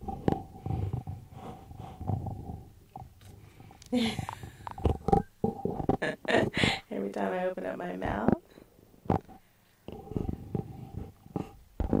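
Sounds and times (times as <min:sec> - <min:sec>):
close breathing and mouth noises: 0:00.0 - 0:06.9, 0:08.4 - 0:12.0
person laughing: 0:03.9 - 0:04.9, 0:05.9 - 0:06.9.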